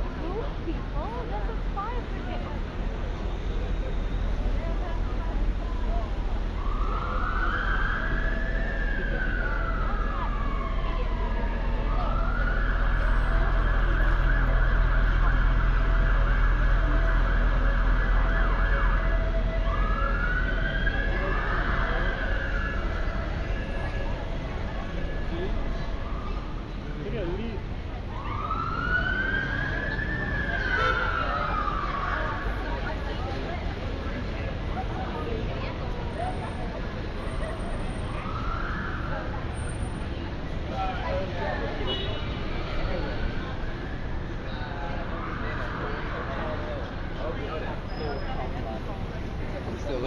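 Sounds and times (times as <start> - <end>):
low traffic rumble: 0.0 - 50.0
emergency vehicle siren: 0.1 - 50.0.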